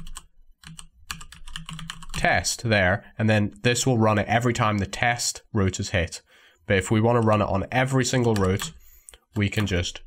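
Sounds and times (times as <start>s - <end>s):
computer keyboard typing: 0.0s - 2.2s, 7.1s - 8.8s.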